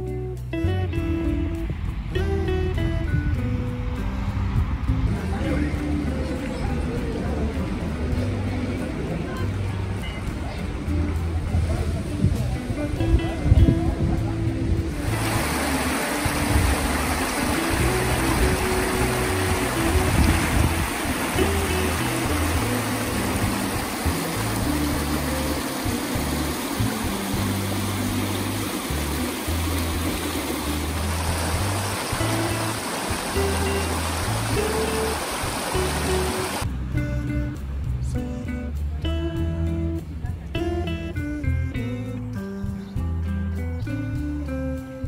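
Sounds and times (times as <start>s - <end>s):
background music bass notes: 0.0s - 45.0s
river rushing over stones: 14.8s - 36.7s.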